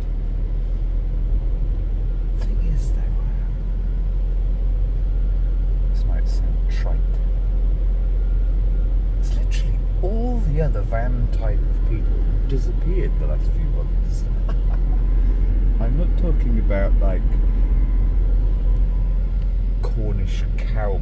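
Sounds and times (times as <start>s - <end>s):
engine and road rumble: 0.0s - 21.0s.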